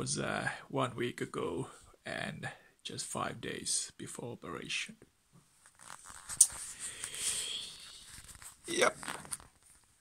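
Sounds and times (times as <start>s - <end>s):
rubbing and rustling against mic: 5.4s - 10.0s.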